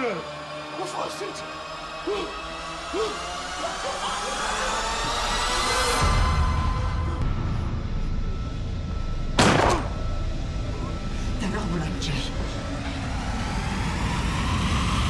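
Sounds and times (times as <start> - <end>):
steady low rumble: 3.3 - 15.0.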